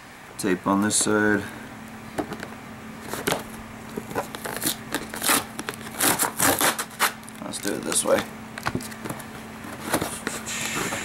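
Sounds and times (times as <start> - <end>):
cardboard box tape being torn: 4.1 - 8.2.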